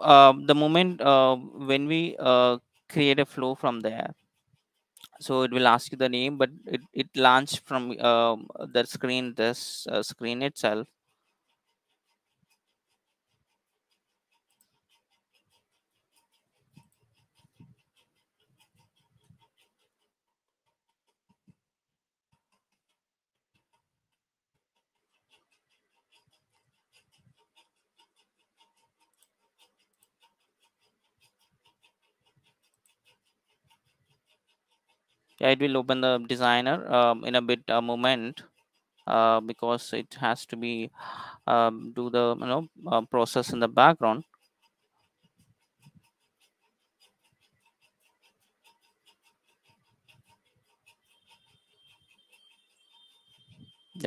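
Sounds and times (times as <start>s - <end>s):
faint rapid clicking: 0.0s - 21.6s, 22.3s - 54.0s.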